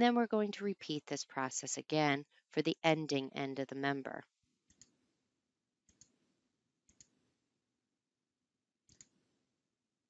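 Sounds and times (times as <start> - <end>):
computer mouse clicks: 8.9 - 9.1.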